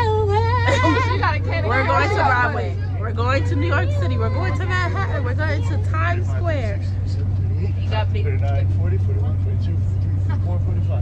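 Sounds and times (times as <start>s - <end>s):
bus engine drone: 0.0s - 11.0s
people talking: 0.0s - 11.0s.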